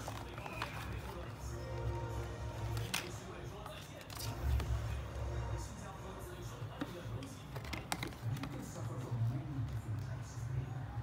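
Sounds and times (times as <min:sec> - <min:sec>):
card pages flipping: 0:00.0 - 0:02.0, 0:02.6 - 0:04.8.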